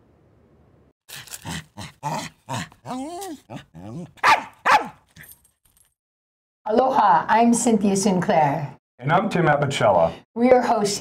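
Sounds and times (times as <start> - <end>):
small dog barking and yelping: 1.8 - 5.1.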